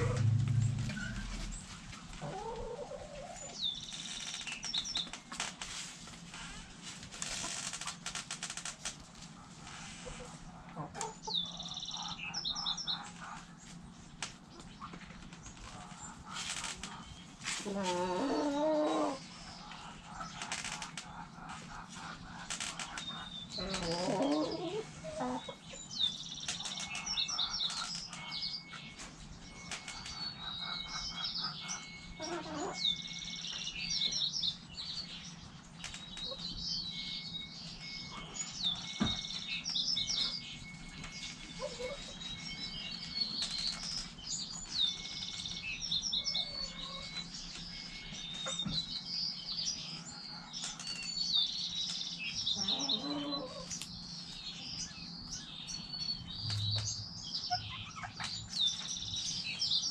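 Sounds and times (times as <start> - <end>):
hens clucking: 0.0 - 3.6, 9.2 - 25.7, 52.6 - 53.8
low hum: 0.0 - 3.6
songbirds chirping and singing: 0.0 - 59.9.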